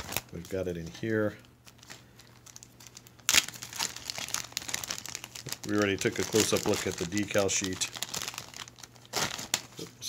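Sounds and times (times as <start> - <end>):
plastic bag crinkling: 0.0 - 9.9.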